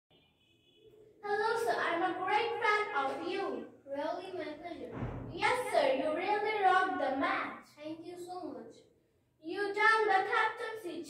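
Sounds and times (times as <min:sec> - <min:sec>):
girl speaking into a microphone: 0:01.2 - 0:11.0.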